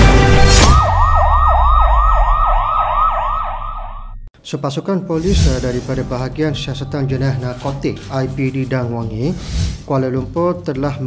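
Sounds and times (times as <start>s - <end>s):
music: 0.0s - 1.3s, 4.4s - 11.0s
emergency siren yelping: 0.6s - 4.3s.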